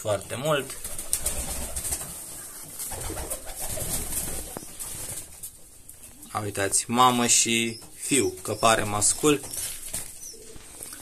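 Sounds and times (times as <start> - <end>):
pigeons cooing: 1.1 - 5.2, 7.2 - 11.0.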